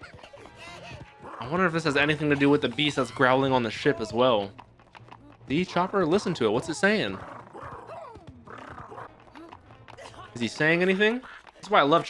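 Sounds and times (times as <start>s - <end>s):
anime background music: 0.0s - 12.0s.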